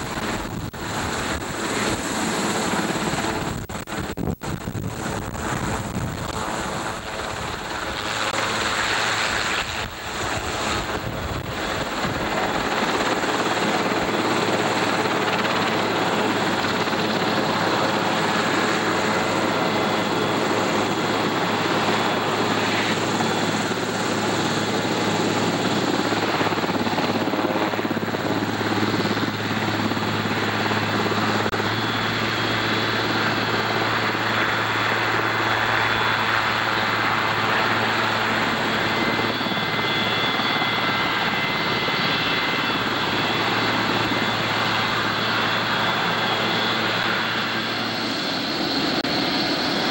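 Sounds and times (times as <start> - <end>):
helicopter running on the ground: 0.0 - 49.9.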